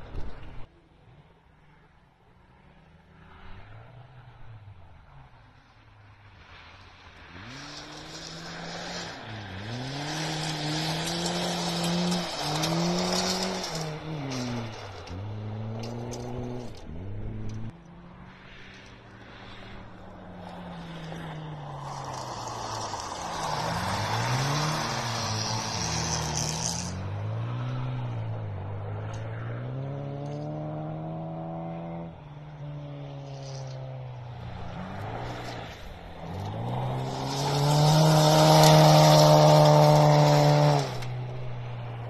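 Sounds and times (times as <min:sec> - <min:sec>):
rally car engines revving: 0:02.5 - 0:42.0
tyres rushing on gravel: 0:06.6 - 0:16.8, 0:20.4 - 0:27.2, 0:33.2 - 0:41.7.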